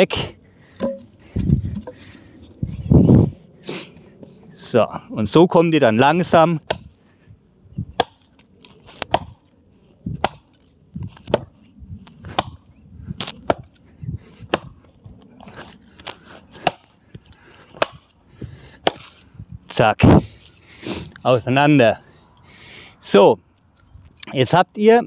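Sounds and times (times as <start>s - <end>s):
hatchet chopping log: 0.8s - 1.1s, 6.6s - 6.9s, 8.0s - 8.3s, 9.0s - 9.4s, 10.2s - 11.5s, 12.2s - 12.6s, 13.2s - 13.7s, 14.4s - 14.8s, 16.0s - 17.0s, 17.7s - 18.1s, 18.8s - 19.2s.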